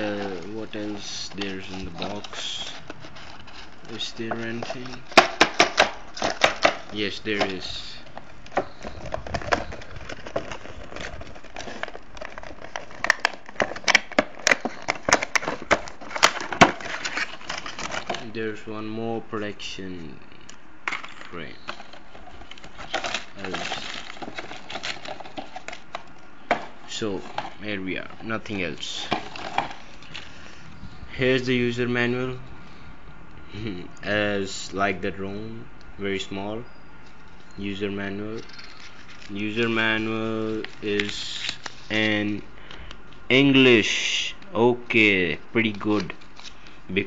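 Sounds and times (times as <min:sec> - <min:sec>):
handling box and paper: 0:00.0 - 0:18.6, 0:20.9 - 0:30.5, 0:37.1 - 0:42.4, 0:45.6 - 0:46.8
plastic box clicks and knocks: 0:05.1 - 0:07.5, 0:11.8 - 0:17.0.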